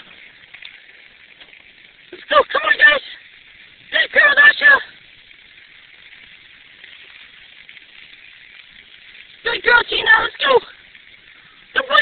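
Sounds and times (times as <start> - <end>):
bicycle rolling on dirt: 0.0 - 12.0.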